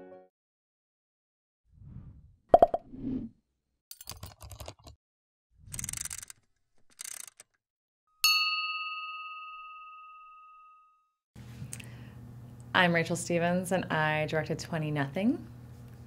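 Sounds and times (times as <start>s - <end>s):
bell-like ding: 8.2s - 11.1s.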